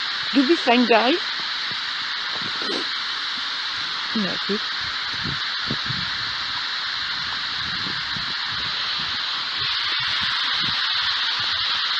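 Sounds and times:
radio static hiss: 0:00.0 - 0:11.9.

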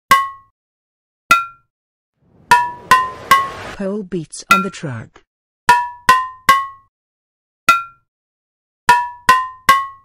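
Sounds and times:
bell-like metallic percussion hits: 0:02.3 - 0:03.8.

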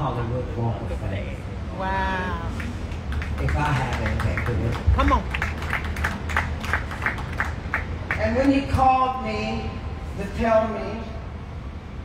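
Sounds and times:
audience clapping in rhythm: 0:02.6 - 0:08.6.

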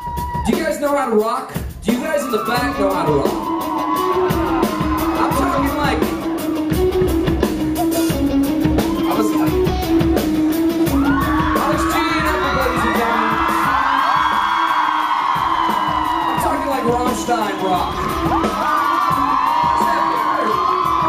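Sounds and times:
audience yelling and whooping: 0:00.0 - 0:00.7, 0:01.9 - 0:09.9, 0:10.5 - 0:21.0
live rock band playing: 0:00.0 - 0:21.0.

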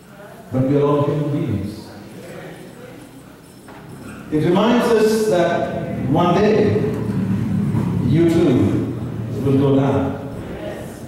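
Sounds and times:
man speaking over microphone: 0:00.5 - 0:02.0, 0:04.3 - 0:07.1, 0:08.0 - 0:10.3.

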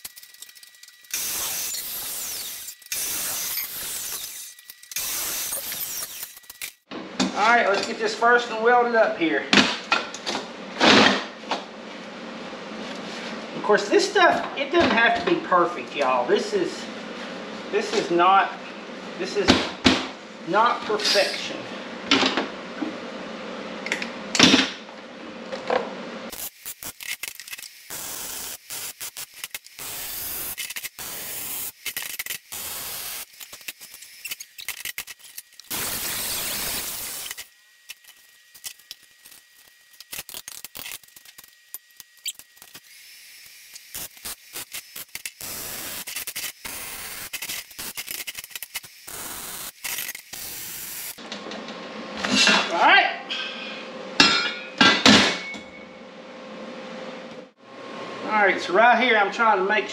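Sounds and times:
welding arc crackling: 0:00.0 - 0:06.9, 0:26.3 - 0:51.2.

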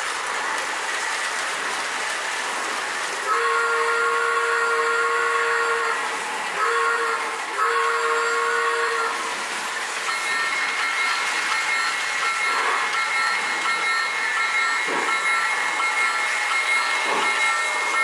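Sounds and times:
toy train running: 0:00.0 - 0:18.0
toy train steam whistle: 0:03.2 - 0:18.0.

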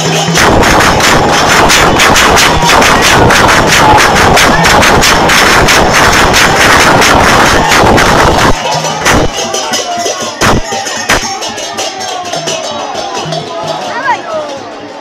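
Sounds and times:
rapid sharp bangs: 0:00.0 - 0:09.5, 0:10.4 - 0:11.3
crowd noise: 0:00.0 - 0:15.0.

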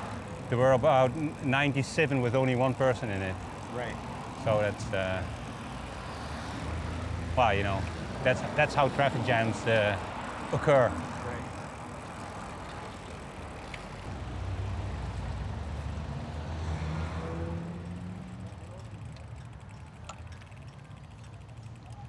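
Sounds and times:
street traffic noise: 0:00.0 - 0:22.0
car passing close: 0:01.3 - 0:19.0.

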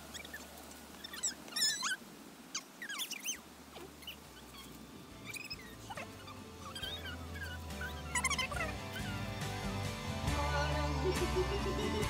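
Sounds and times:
sped up squeaky voices: 0:01.0 - 0:09.3
faint low music: 0:04.0 - 0:12.0.

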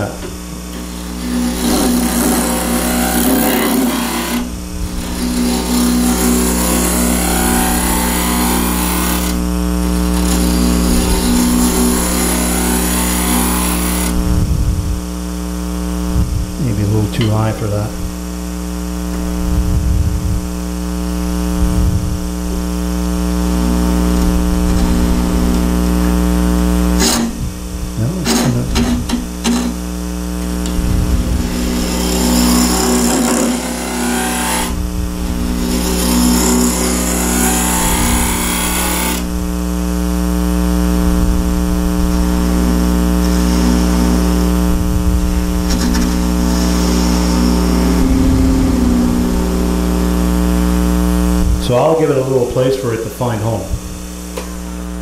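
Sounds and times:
wood lathe humming: 0:00.0 - 0:16.6, 0:22.2 - 0:51.6
gouge scraping wood: 0:00.6 - 0:14.2, 0:30.5 - 0:39.3, 0:42.7 - 0:44.7, 0:45.5 - 0:49.6.

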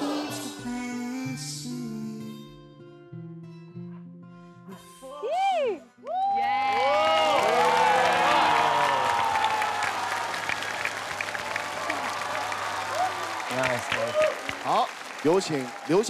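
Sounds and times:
audience cheering: 0:06.0 - 0:16.0
audience applauding: 0:06.1 - 0:16.0.

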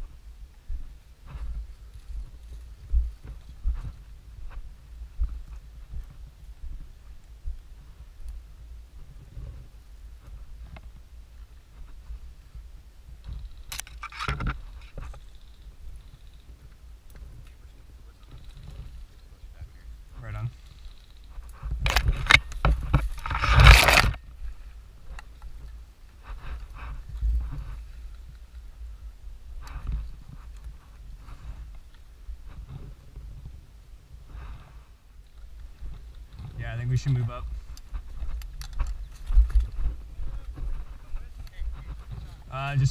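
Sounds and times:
low wind rumble: 0:00.0 - 0:42.9
microphone handling noise: 0:09.0 - 0:11.1, 0:21.2 - 0:42.9
brush scraping against camera: 0:21.3 - 0:24.2.

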